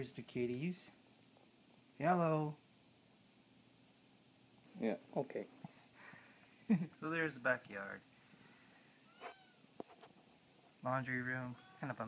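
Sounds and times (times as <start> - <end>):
cat meowing: 9.0 - 9.7, 11.6 - 12.0.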